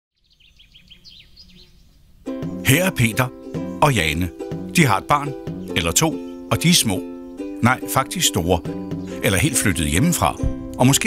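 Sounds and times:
faint bird chirping: 0.2 - 11.0.

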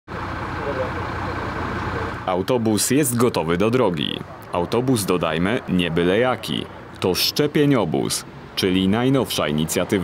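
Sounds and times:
bus engine idling: 0.1 - 10.0.

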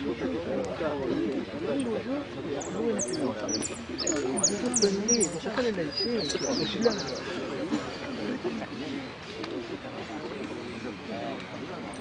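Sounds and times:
background voices talking: 0.0 - 12.0
bird calls: 2.6 - 7.4.

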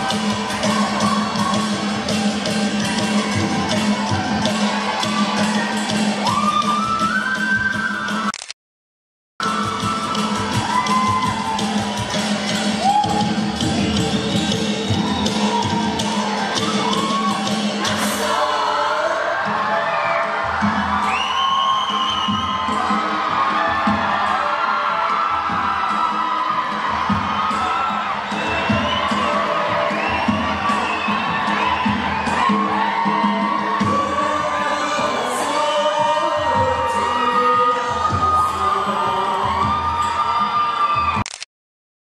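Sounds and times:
loud dance music: 0.0 - 8.2, 9.4 - 41.1
audience cheering and shouting: 0.0 - 8.3, 9.4 - 41.3.

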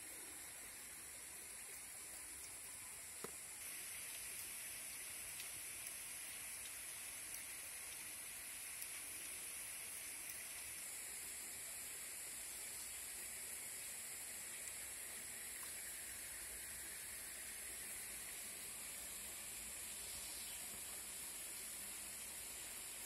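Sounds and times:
high-pitched hiss: 0.0 - 23.0.

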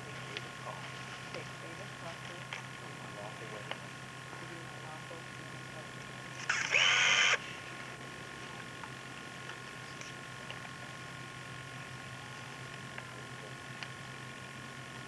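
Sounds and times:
videotape hum and hiss: 0.0 - 15.0.

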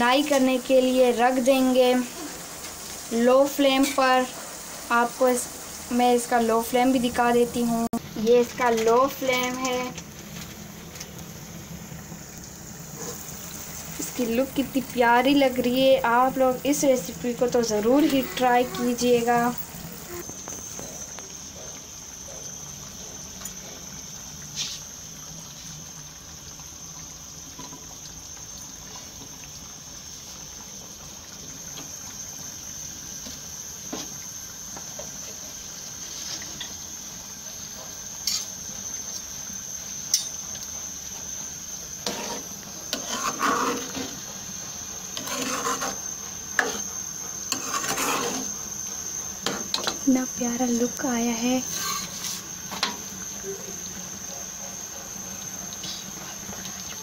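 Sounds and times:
pan hissing over gas flame: 0.0 - 57.0
metal ladle scraping steel pot: 45.2 - 46.0, 47.5 - 48.4, 51.7 - 52.4.

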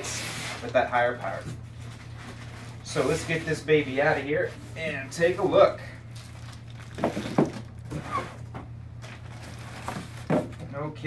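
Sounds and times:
foam and plastic bag rubbing: 0.0 - 10.4.

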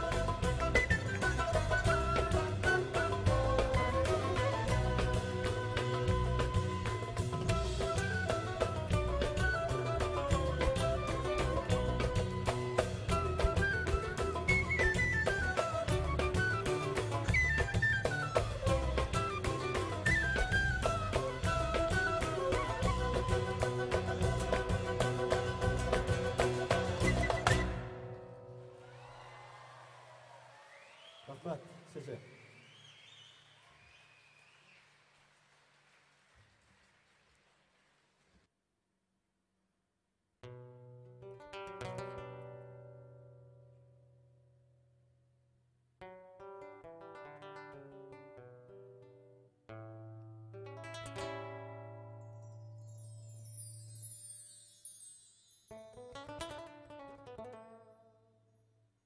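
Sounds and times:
drum kit: 0.0 - 28.1
bass guitar: 0.0 - 28.4
bowed string instrument: 0.0 - 28.5
bamboo flute melody: 0.0 - 29.0.

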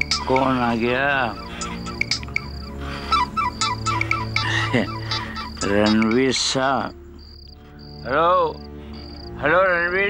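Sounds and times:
crickets chirping: 0.0 - 10.0
music with wordless vocal melody: 0.0 - 10.0.

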